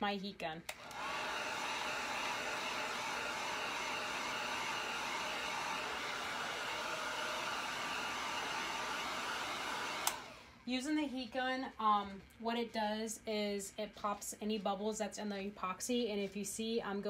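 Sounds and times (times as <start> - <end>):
heat gun blowing hiss: 0.8 - 10.4.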